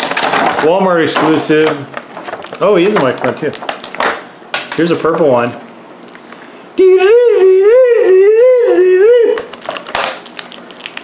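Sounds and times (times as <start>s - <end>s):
plastic packaging crinkling: 0.0s - 6.6s, 9.4s - 11.0s
person singing wavering ooo: 6.8s - 9.6s.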